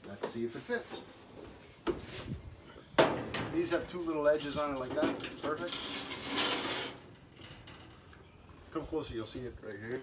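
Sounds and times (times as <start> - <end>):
metal tray scraping on runners: 4.4 - 7.1.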